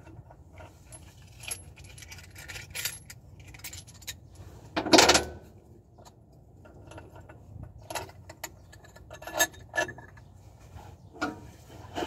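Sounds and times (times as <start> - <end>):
hand tools clinking and rattling: 0.1 - 4.2, 6.8 - 10.3.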